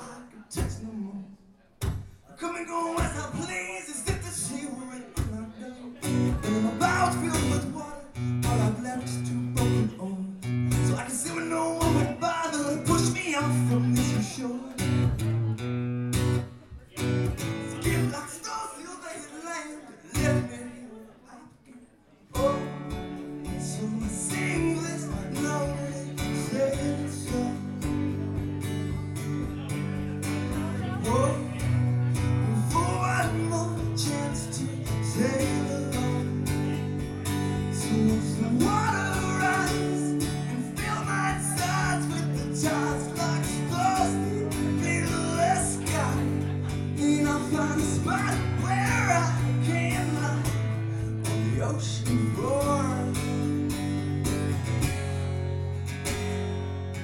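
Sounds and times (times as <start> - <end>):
man singing: 0.0 - 15.7, 16.9 - 54.1
acoustic guitar strumming: 2.8 - 20.8, 22.4 - 57.0.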